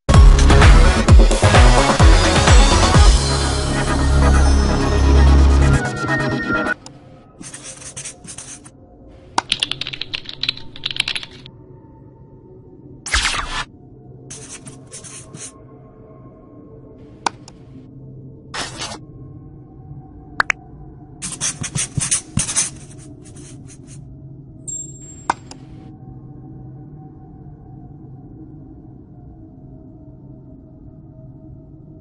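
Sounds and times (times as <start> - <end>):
scratchy strokes: 7.4 - 8.7, 14.3 - 15.5, 18.6 - 19.0, 21.2 - 24.0
rapid irregular clicking: 9.4 - 11.5.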